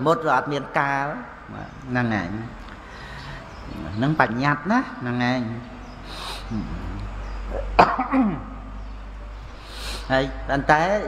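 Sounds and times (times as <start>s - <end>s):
man coughing: 7.6s - 8.6s.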